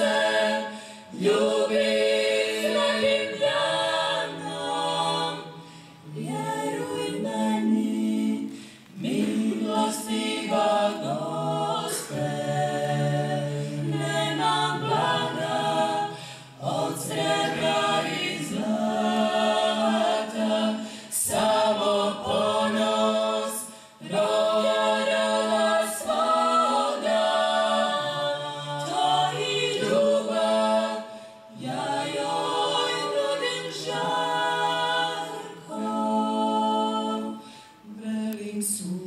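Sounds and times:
women's vocal group singing: 0:00.0 - 0:39.0
breath between phrases: 0:00.7 - 0:01.1, 0:05.6 - 0:06.0, 0:08.5 - 0:08.9, 0:16.1 - 0:16.6, 0:20.8 - 0:21.1, 0:23.6 - 0:24.0, 0:31.1 - 0:31.5, 0:37.4 - 0:37.8.

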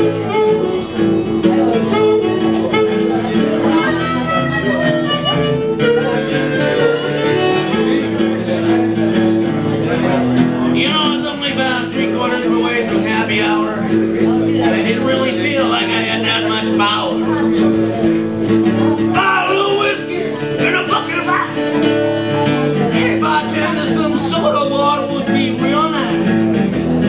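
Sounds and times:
acoustic guitars strumming: 0:00.0 - 0:27.0
person speaking: 0:19.1 - 0:21.7.

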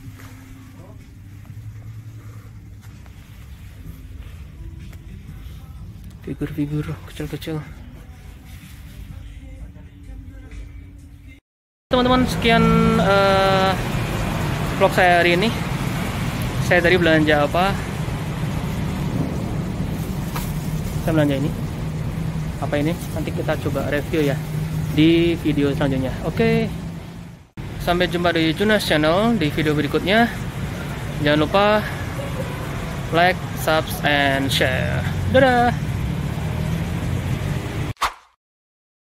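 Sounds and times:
engine rumble: 0:00.0 - 0:11.1, 0:11.9 - 0:37.9.

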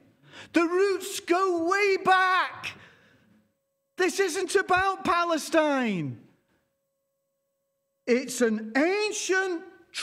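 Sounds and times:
man speaking: 0:00.4 - 0:03.0, 0:04.0 - 0:06.4, 0:08.0 - 0:10.0.

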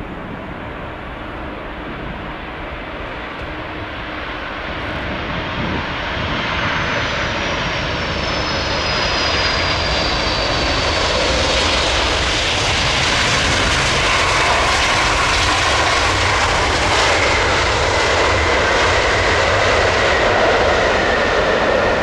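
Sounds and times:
jet engine roar: 0:00.0 - 0:22.0.

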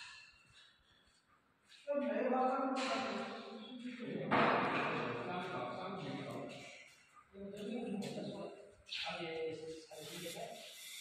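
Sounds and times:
person speaking: 0:01.9 - 0:11.0.

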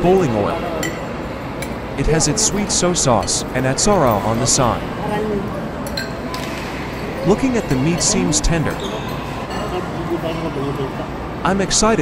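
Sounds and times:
murmur of chatter: 0:00.0 - 0:12.0
tableware clinking: 0:00.6 - 0:04.8, 0:05.8 - 0:09.8.

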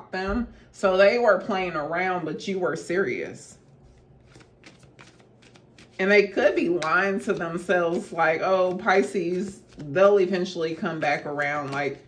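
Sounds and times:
cards being shuffled: 0:03.7 - 0:12.0.

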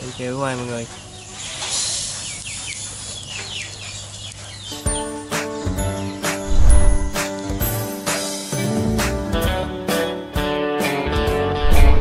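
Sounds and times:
birds chirping: 0:00.0 - 0:08.2
bright music jingle: 0:04.8 - 0:09.8.

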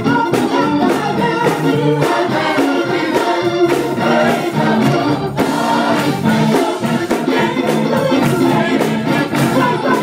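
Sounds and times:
gospel choir singing: 0:00.0 - 0:10.0
steady beat: 0:00.0 - 0:10.0.

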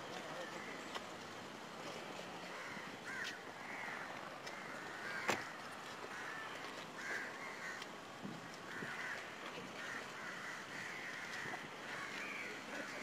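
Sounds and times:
faint street background: 0:00.0 - 0:13.0
crows cawing: 0:02.5 - 0:07.9, 0:08.6 - 0:13.0.

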